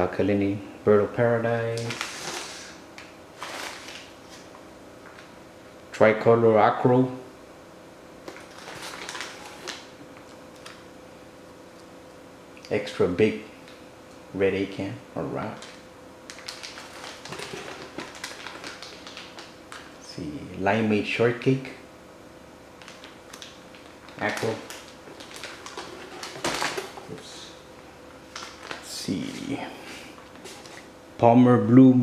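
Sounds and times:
faint steady hum: 0.0s - 32.0s
plastic bags rustling and crinkling: 1.7s - 5.3s, 8.3s - 10.8s, 15.6s - 20.0s, 22.8s - 27.5s, 28.3s - 30.9s.

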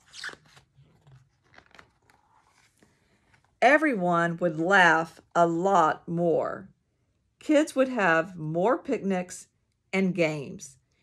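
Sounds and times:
book page turning: 0.0s - 3.6s.

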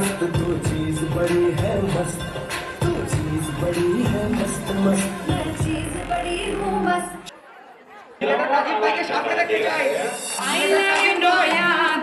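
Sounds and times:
dance music: 0.0s - 7.4s, 8.2s - 12.0s
faint chatter in a hall: 0.0s - 12.0s
loud voices: 0.0s - 12.0s.

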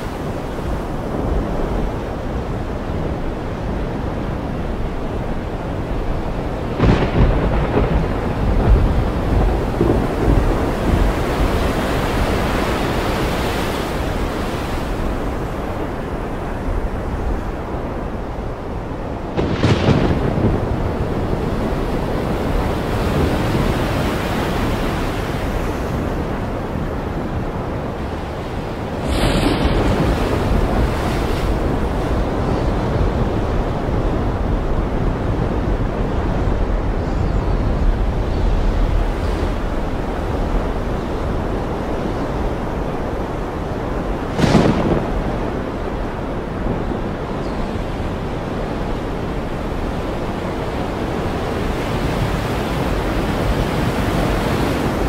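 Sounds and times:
rough sea breaking: 0.0s - 55.0s
wind buffeting microphone: 0.0s - 55.0s.

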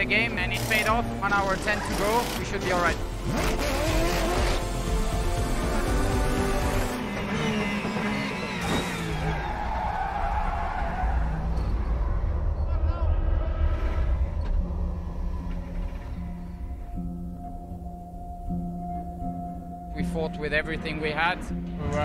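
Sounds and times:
background music: 0.0s - 22.0s
race car engine revving: 1.5s - 11.6s.

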